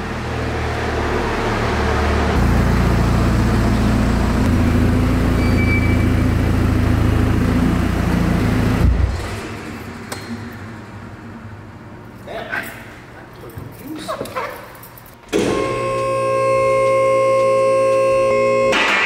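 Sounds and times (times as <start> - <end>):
diesel car engine running: 0.0 - 9.3
engine shuddering off: 0.0 - 11.6.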